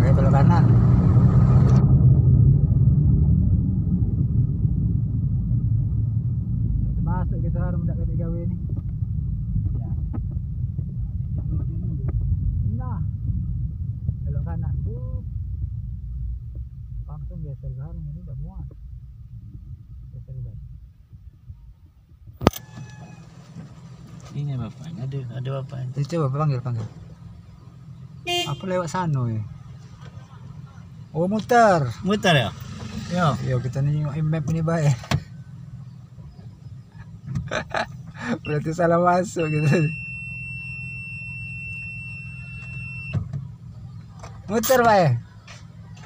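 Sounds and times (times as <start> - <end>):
car engine hum: 0.0 - 46.0
road noise: 0.0 - 46.0
sharp click: 22.4 - 22.7
high-pitched warning beep: 38.4 - 38.7, 39.3 - 43.2.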